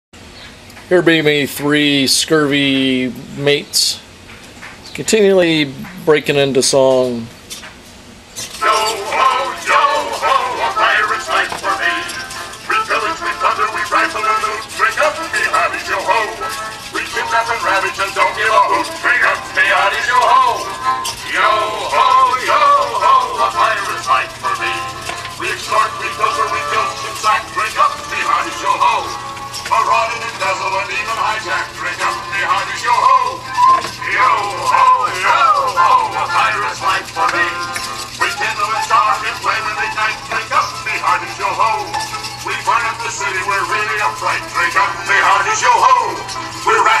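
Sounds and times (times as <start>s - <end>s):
musical backing: 8.5s - 47.0s
voices singing a pirate song: 8.5s - 47.0s.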